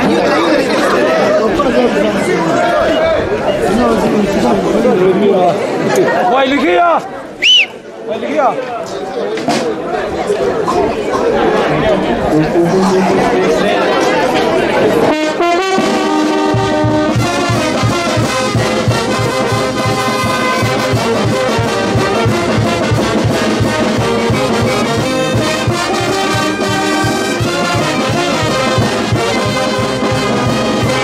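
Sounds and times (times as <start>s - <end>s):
crowd chatter: 0.0s - 31.0s
street brass band playing: 10.6s - 31.0s.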